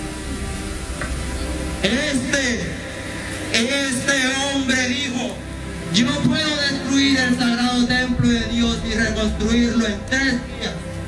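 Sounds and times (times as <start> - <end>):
faint background music: 0.0 - 11.0
low rumble: 0.0 - 11.0
steady hiss: 0.0 - 11.0.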